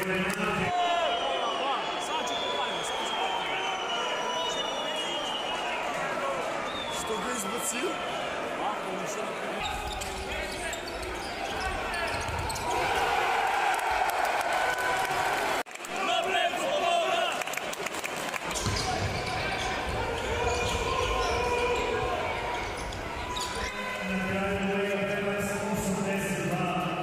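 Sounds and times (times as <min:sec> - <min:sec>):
echoing voices in hall: 0:00.0 - 0:27.0
basketball bouncing on court: 0:11.5 - 0:12.6, 0:18.5 - 0:23.5.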